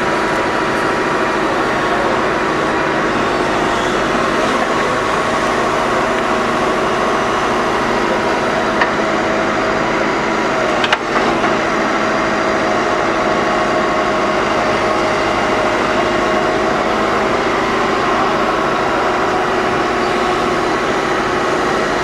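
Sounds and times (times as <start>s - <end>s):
excavator running: 0.0s - 22.0s
hydraulic whine: 0.0s - 22.0s.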